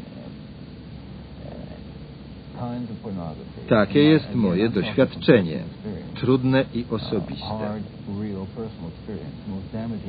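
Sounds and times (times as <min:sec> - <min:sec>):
recording hum and hiss: 0:00.0 - 0:10.0
man speaking: 0:02.6 - 0:10.0.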